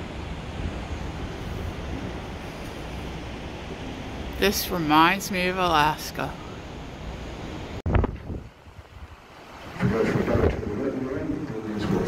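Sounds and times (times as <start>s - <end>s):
wind buffeting microphone: 6.4s - 12.0s.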